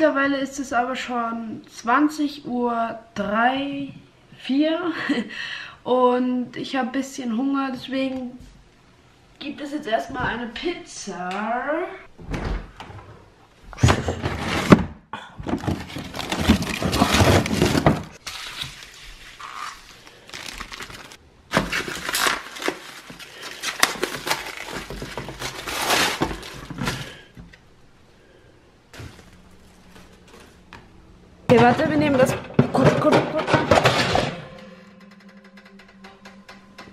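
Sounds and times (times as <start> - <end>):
plastic film crinkling and tearing: 15.8 - 27.2.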